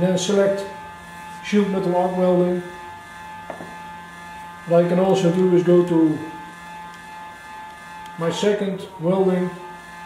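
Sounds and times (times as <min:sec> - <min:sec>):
welder electrical hum: 0:00.0 - 0:10.0.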